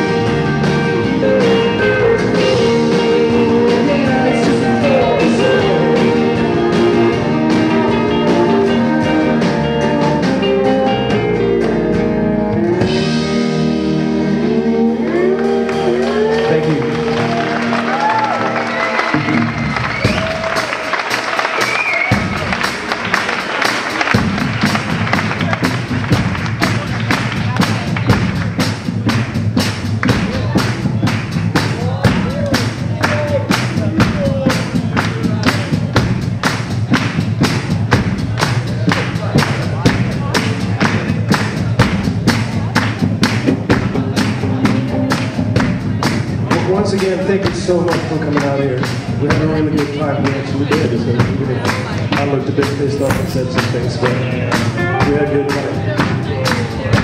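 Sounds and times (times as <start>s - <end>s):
electric guitar: 0.0s - 28.3s
drums steady beat: 0.0s - 57.0s
live rock band playing: 0.0s - 57.0s
drum hits: 22.0s - 46.7s, 52.9s - 54.1s.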